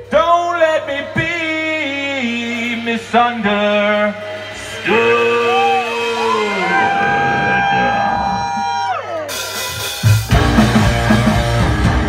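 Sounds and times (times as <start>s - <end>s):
crowd holding long notes: 1.2s - 12.0s
crowd whooping: 4.4s - 12.0s.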